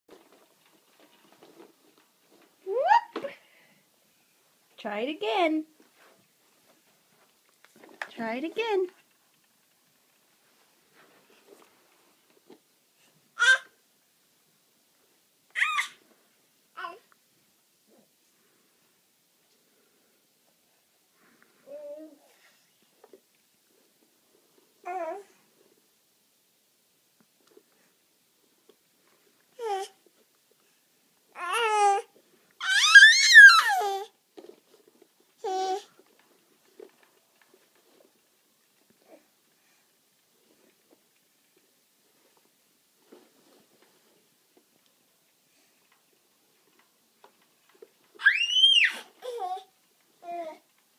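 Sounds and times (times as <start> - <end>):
faint rustle: 0.1 - 13.6, 14.9 - 26.0, 33.4 - 50.9
baby crying: 15.6 - 16.0, 31.4 - 34.1
baby squealing: 15.6 - 16.0, 32.6 - 34.0, 48.2 - 49.1.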